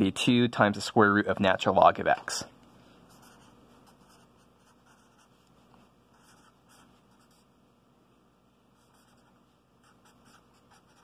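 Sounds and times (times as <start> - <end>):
marker writing on paper: 3.1 - 5.3, 6.1 - 7.4, 8.8 - 11.0.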